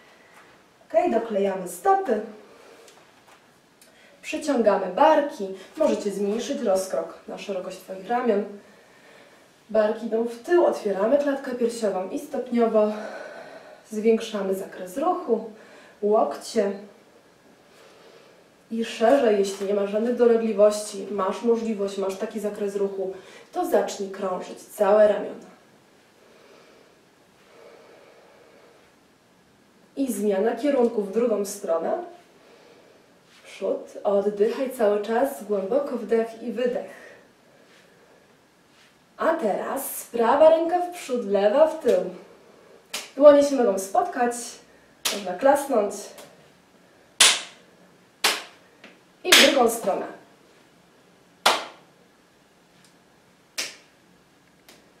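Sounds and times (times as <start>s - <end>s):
soft breathing: 2.4s - 3.2s, 8.6s - 9.7s, 12.9s - 13.9s, 15.5s - 16.0s, 17.1s - 18.6s, 26.1s - 29.0s, 32.2s - 33.5s, 36.9s - 39.0s
hand claps with room echo: 42.9s - 43.2s, 47.2s - 47.6s, 48.2s - 49.6s, 51.4s - 51.8s, 53.6s - 53.9s.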